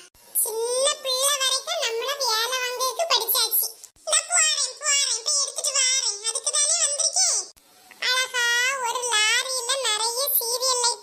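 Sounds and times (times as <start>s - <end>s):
high-pitched cartoon voice: 0.0s - 11.0s.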